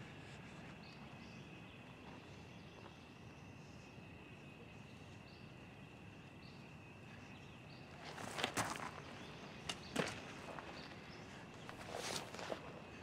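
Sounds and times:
night insects chirring: 0:00.0 - 0:13.0.

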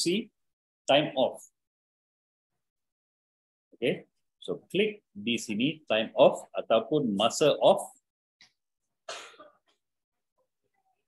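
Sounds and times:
person coughing: 0:09.1 - 0:09.6.

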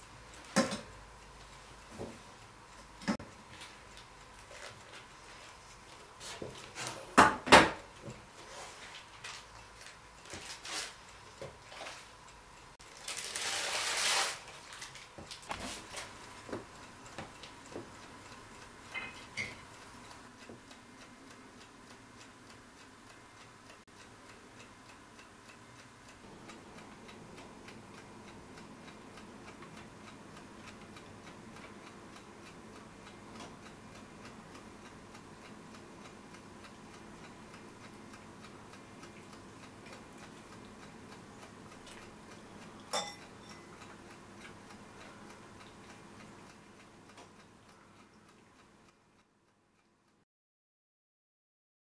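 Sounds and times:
faint steady ticking: 0:00.0 - 0:12.9, 0:15.5 - 0:50.2.

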